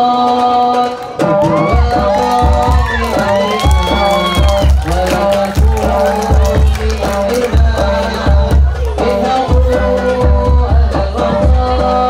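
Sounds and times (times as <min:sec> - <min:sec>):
frame drums: 0:00.0 - 0:12.0
voices calling and cheering: 0:01.0 - 0:12.0
deep bass drum beating: 0:01.4 - 0:12.0.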